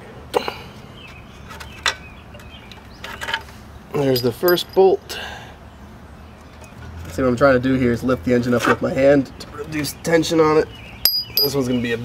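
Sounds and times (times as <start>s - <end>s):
metallic clicks and knocks: 4.2s - 4.8s, 11.1s - 11.6s.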